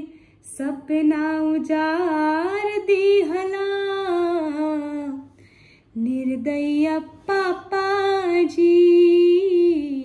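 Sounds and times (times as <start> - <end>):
woman singing unaccompanied: 0.0 - 5.3, 6.0 - 10.0.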